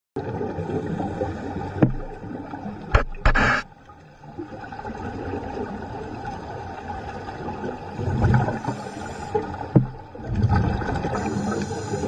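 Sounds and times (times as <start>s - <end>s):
muffled underwater gurgling: 0.2s - 3.6s, 5.0s - 12.0s
sharp knock: 2.9s - 3.6s.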